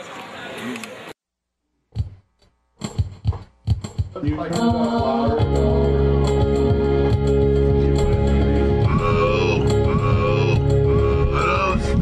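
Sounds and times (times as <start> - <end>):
drum thump: 1.9 - 2.2, 2.8 - 4.2
kick drum and cymbal strikes: 2.0 - 2.2, 2.8 - 5.4
band playing: 4.2 - 12.0.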